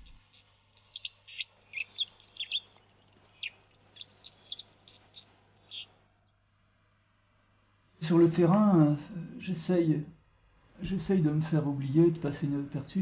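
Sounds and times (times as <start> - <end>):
songbird chirping: 0.0 - 6.5.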